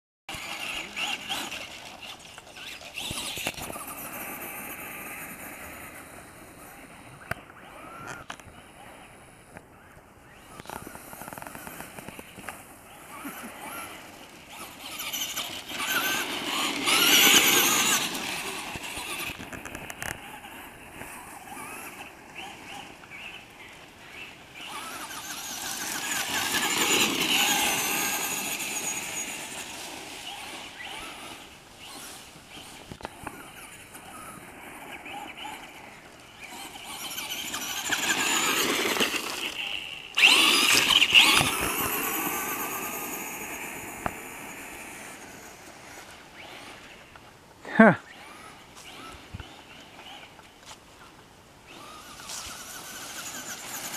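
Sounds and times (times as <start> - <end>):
toy truck motor whining: 0.3 - 9.0, 10.4 - 50.4, 51.7 - 53.9.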